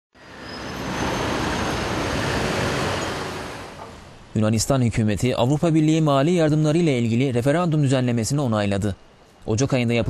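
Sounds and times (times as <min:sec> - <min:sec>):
rushing street traffic: 0:00.1 - 0:04.7.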